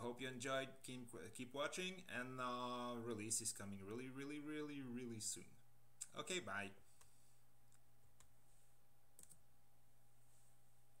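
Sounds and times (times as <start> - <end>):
faint steady hum: 0.0 - 11.0
computer mouse and key clicks: 7.0 - 8.4, 9.2 - 9.4.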